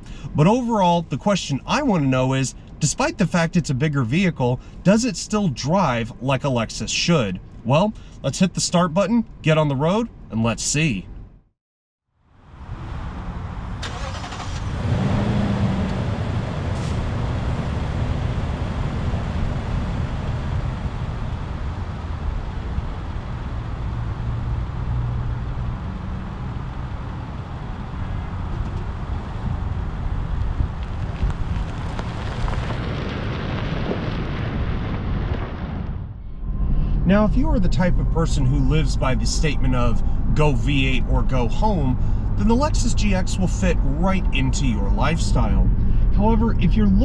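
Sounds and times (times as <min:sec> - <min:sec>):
car engine driving: 0:12.4 - 0:47.0
wind noise: 0:12.6 - 0:47.0.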